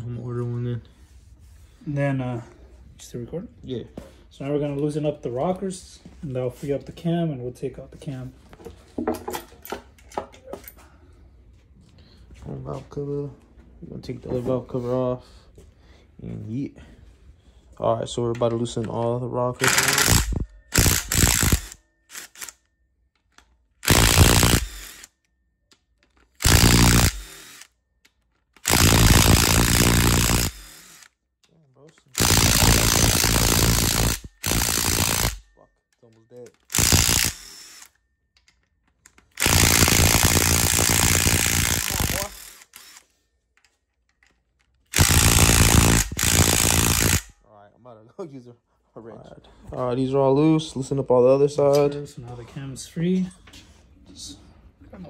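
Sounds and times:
impact wrench bursts: 0:19.6 - 0:22.6, 0:23.8 - 0:25.2, 0:26.3 - 0:27.8, 0:28.6 - 0:31.2, 0:32.0 - 0:35.5, 0:36.6 - 0:38.0, 0:39.2 - 0:43.1, 0:44.9 - 0:47.4.

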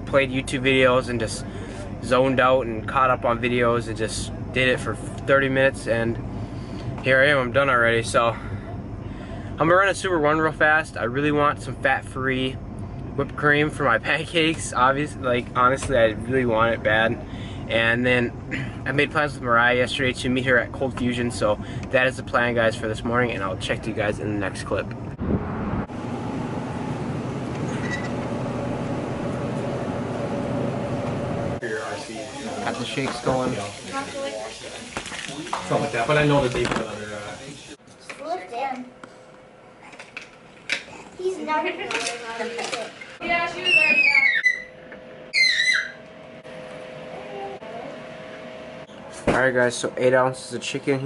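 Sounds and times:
refrigerator hum: 0:00.0 - 0:51.0
high-pitched falling squeal: 0:43.6 - 0:46.0.

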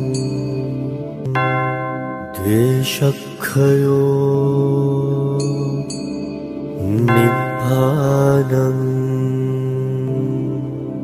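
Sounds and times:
devotional chant sung over music: 0:02.4 - 0:06.0, 0:06.8 - 0:11.0.

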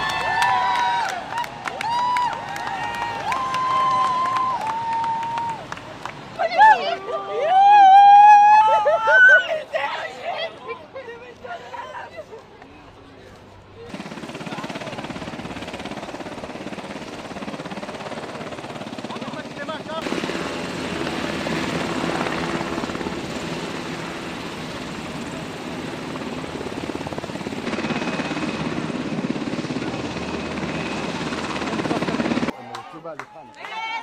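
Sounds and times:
helicopter rotor and turbine: 0:13.9 - 0:32.5.

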